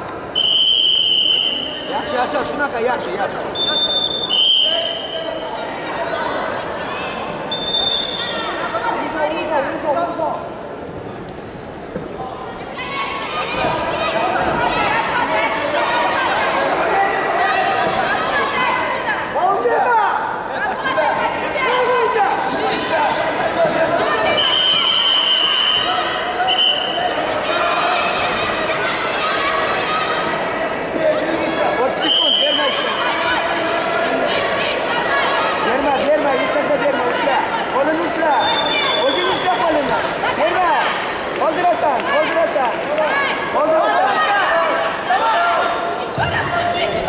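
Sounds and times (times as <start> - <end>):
chatter in a sports hall: 0.0 - 47.0
referee's whistle: 0.4 - 1.9, 3.6 - 5.3, 7.5 - 8.5, 24.3 - 27.0, 32.0 - 32.8, 38.4 - 39.8.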